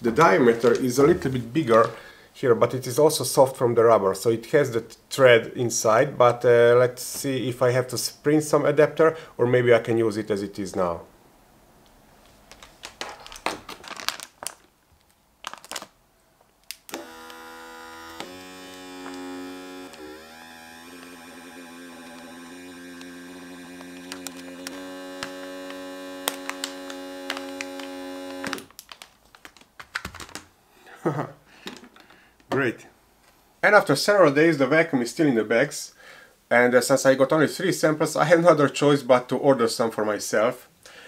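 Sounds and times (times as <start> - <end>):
clicks and handling noise: 11.8 - 17.4, 18.0 - 30.5
electric vacuum pump humming: 16.9 - 28.7.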